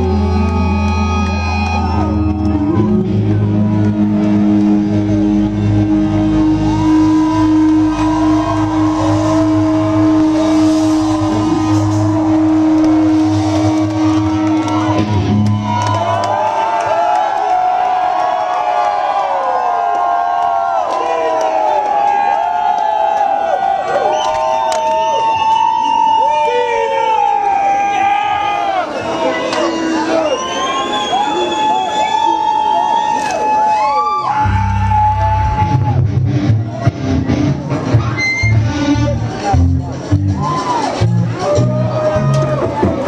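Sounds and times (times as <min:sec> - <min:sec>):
crowd cheering and whooping: 0:00.0 - 0:43.0.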